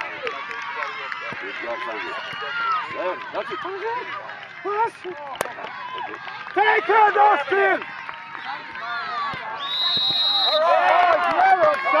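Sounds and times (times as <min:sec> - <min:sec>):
spectators shouting: 0:00.0 - 0:12.0
referee's whistle: 0:09.5 - 0:10.8.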